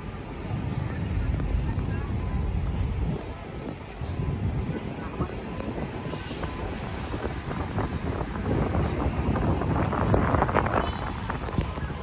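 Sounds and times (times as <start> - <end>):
people's voices: 0.0 - 12.0
wind noise on microphone: 0.0 - 12.0.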